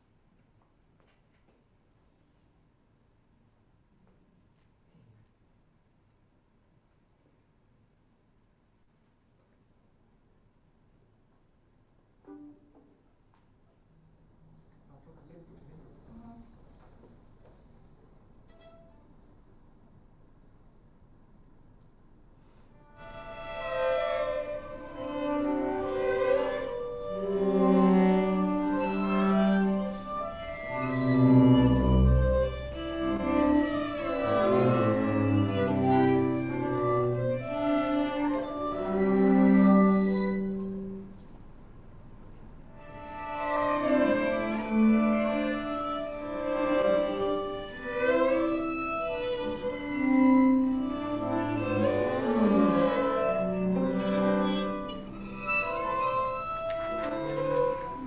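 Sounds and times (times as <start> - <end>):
string orchestra playing held notes: 22.9 - 41.2, 42.8 - 58.0.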